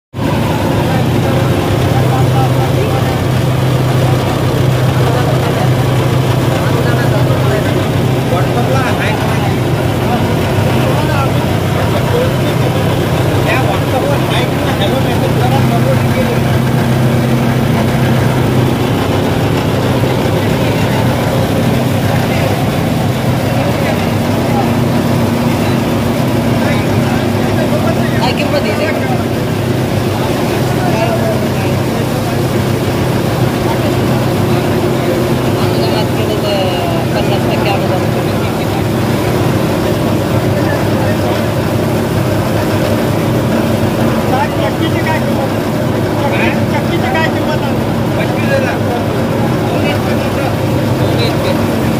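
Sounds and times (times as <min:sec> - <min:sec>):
higher hum: 0:00.1 - 0:51.9.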